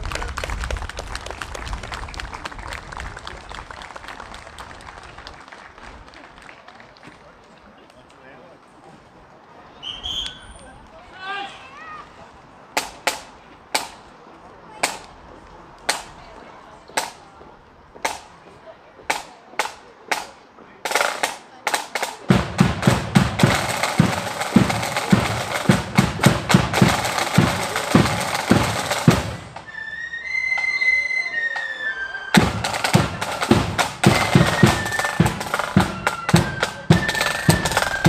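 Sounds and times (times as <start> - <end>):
snare drum roll: 20.9 - 29.7, 32.3 - 38.0
flutes playing high notes: 29.3 - 38.0.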